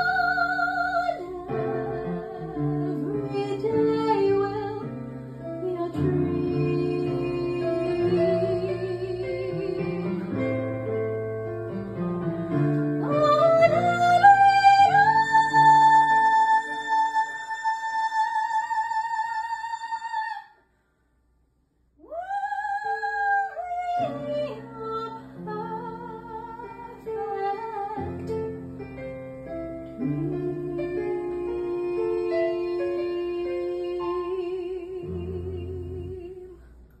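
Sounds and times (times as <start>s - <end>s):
woman singing with vibrato: 0.0s - 5.0s, 5.6s - 10.6s, 13.0s - 20.6s, 22.0s - 28.4s, 30.0s - 36.6s.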